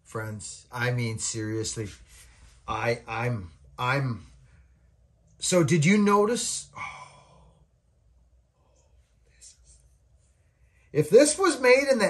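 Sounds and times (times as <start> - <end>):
low steady hum: 0.0 - 12.0
man's voice: 11.0 - 12.0.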